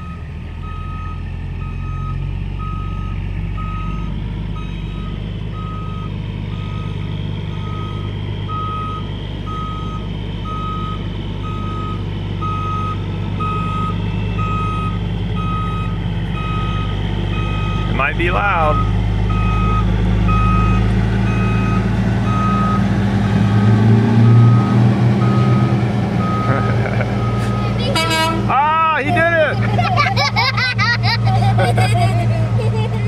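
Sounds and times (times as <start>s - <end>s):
truck reversing alarm beeping: 0.0s - 32.7s
truck engine drone: 0.0s - 33.0s.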